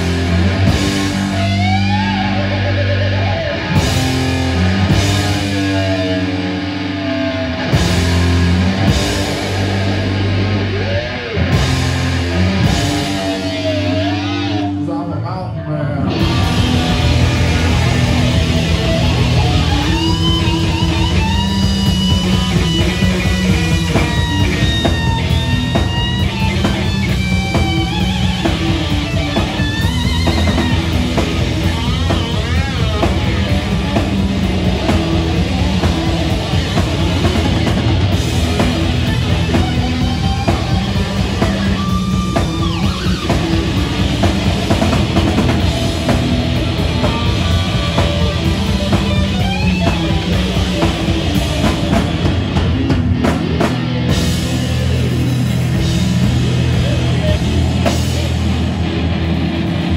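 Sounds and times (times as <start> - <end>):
drum kit: 0.0 - 14.7, 16.1 - 59.9
bass guitar: 0.0 - 59.9
distorted electric guitar lead: 0.0 - 59.9.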